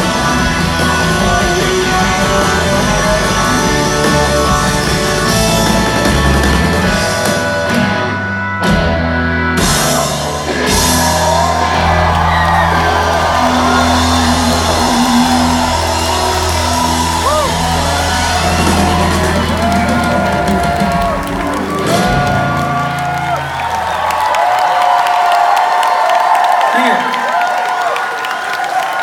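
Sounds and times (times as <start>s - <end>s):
rock band playing: 0.0s - 26.1s
crowd cheering: 9.6s - 29.0s
audience whooping: 10.2s - 29.0s.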